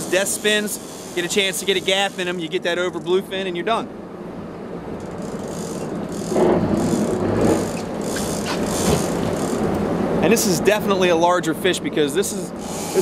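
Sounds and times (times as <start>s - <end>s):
fishing reel rattling and clicking: 0.0s - 3.2s, 5.0s - 9.8s, 12.6s - 13.0s.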